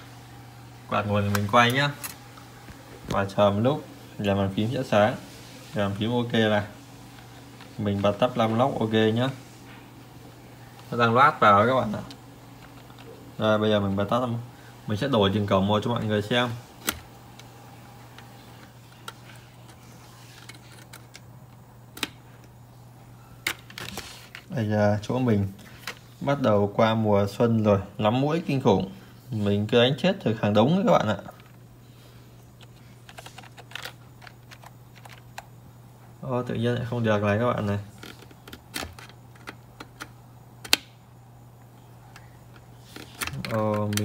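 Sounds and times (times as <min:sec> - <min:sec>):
computer fan humming: 0:00.0 - 0:44.0.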